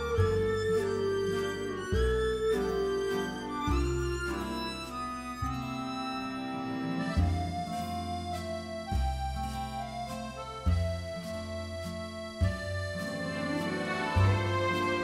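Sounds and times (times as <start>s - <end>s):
deep bass line: 0.0s - 5.8s, 7.1s - 15.0s
background music with sustained chords: 13.1s - 15.0s.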